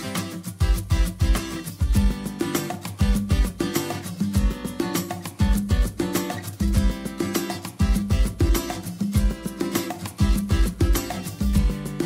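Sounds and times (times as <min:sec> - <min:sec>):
steady bass beat: 0:00.0 - 0:03.7, 0:04.4 - 0:04.8, 0:05.4 - 0:12.0.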